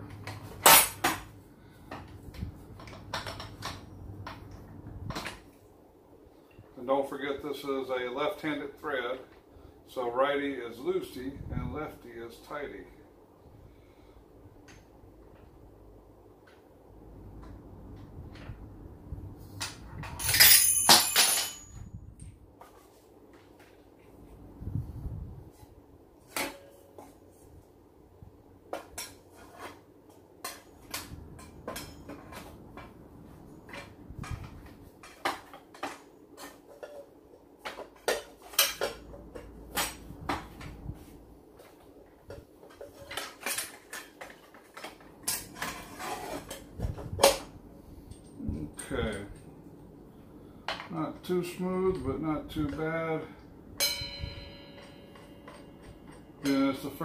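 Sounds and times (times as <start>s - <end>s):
metal clinks and clanks: 20.0s - 21.9s, 53.8s - 56.6s
loud metallic clatter ringing: 53.8s - 55.9s.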